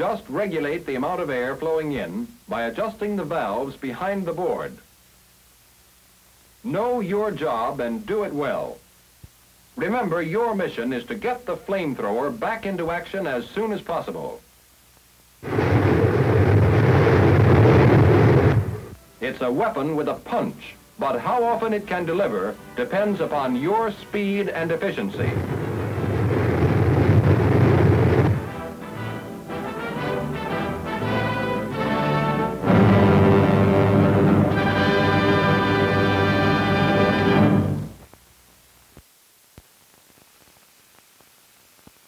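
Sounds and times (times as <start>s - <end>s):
flamethrower firing: 15.4s - 19.0s, 25.0s - 29.1s
orchestral sustained chord: 28.5s - 38.0s.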